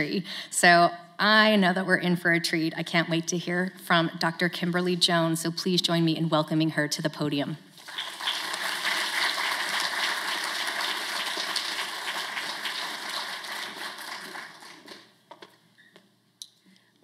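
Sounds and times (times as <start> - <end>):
audience applauding: 7.8 - 15.2.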